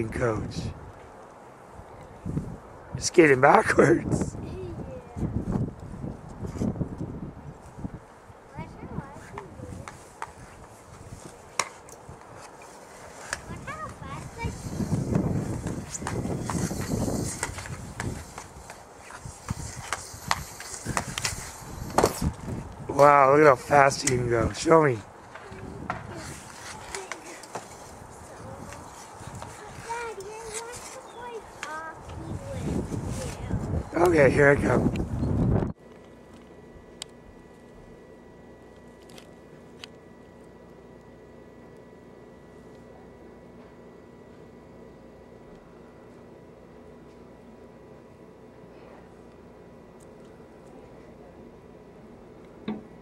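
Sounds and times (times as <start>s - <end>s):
child's voice: 4.3s - 5.4s, 8.5s - 10.0s, 13.4s - 15.0s, 25.3s - 27.6s, 28.2s - 33.7s
skate blades scraping ice: 12.4s - 22.3s, 25.3s - 31.7s.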